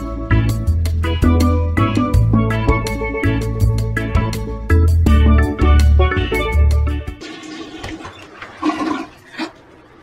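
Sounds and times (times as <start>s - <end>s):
background music: 0.0s - 7.3s
toilet flushing: 7.2s - 10.0s.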